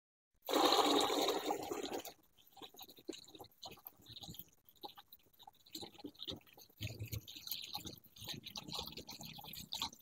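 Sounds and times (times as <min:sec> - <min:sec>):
water gushing into plastic bucket: 0:00.4 - 0:10.0.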